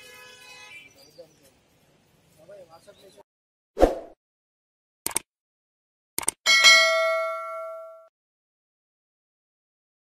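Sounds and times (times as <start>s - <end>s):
quick clicks: 5.0s - 5.3s, 6.2s - 6.4s
bell chime: 6.5s - 8.1s.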